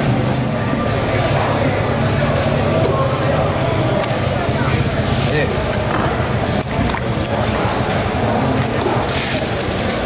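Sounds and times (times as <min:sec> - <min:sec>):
busy market din: 0:00.0 - 0:10.0.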